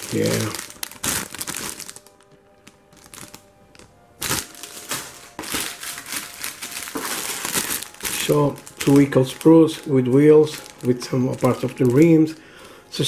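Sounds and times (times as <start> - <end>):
plastic bags crinkling: 0.0 - 13.0.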